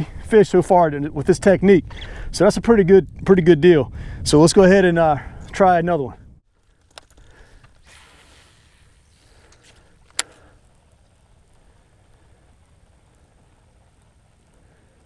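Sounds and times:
faint wind: 0:00.0 - 0:15.0
water noise: 0:07.2 - 0:15.0.

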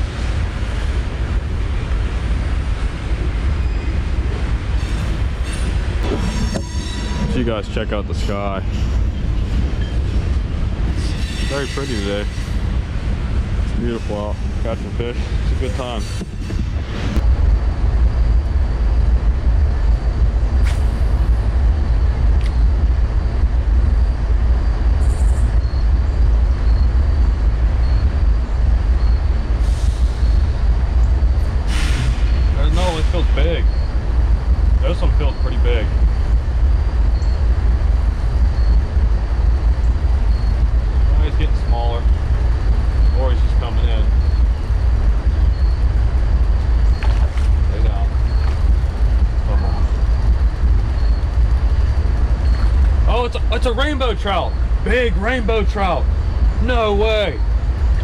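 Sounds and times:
wind buffeting microphone: 0:00.0 - 0:06.6, 0:07.2 - 0:54.9.

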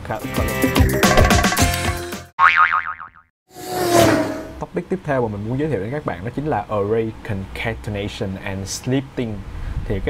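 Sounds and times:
cartoon boing: 0:02.4 - 0:03.3.

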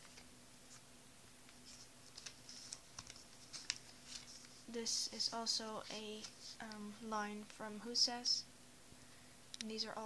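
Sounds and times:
soft paper ticks: 0:01.5 - 0:04.5
notebook pages turning: 0:01.5 - 0:04.6.

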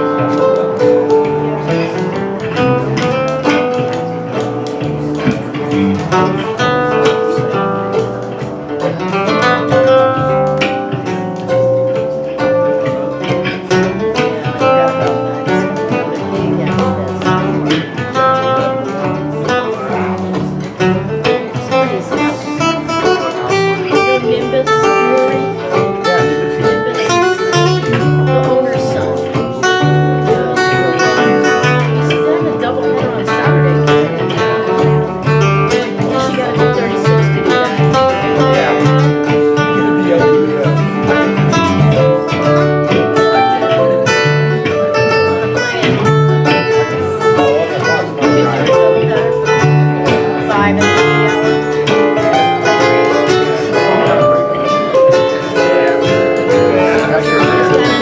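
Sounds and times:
acoustic guitar: 0:00.0 - 0:58.0
mandolin: 0:00.0 - 0:58.0
plucked upright bass: 0:00.0 - 0:58.0.

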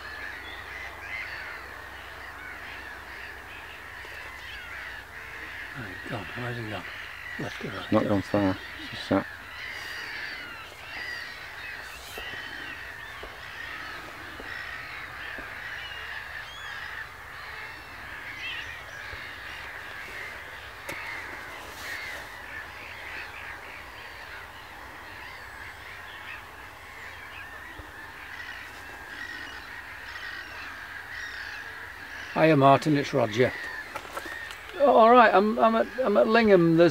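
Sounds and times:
gulls calling: 0:00.0 - 0:36.9.

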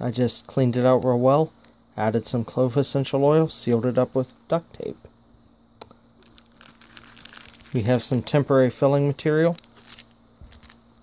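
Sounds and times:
plastic bags crinkling: 0:06.2 - 0:08.2, 0:09.5 - 0:10.8.

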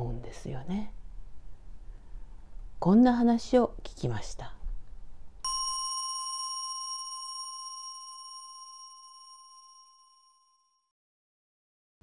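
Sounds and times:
struck bell ringing: 0:05.4 - 0:10.8.

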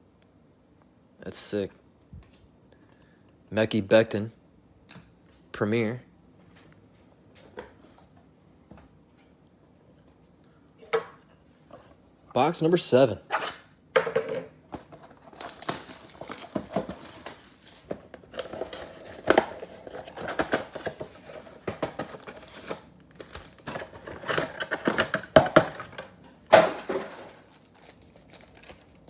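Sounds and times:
shrink wrap crinkling and tearing: 0:15.2 - 0:21.2, 0:22.0 - 0:25.1, 0:27.4 - 0:29.0.

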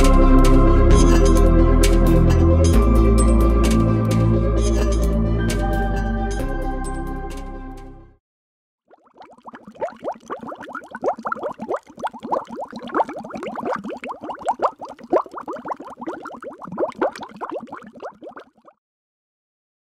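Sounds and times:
water bubbling: 0:08.9 - 0:18.8.

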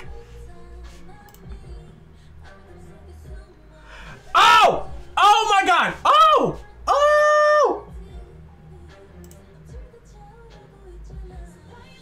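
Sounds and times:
faint background music: 0:00.0 - 0:12.0
man shouting excitedly: 0:04.4 - 0:07.8.

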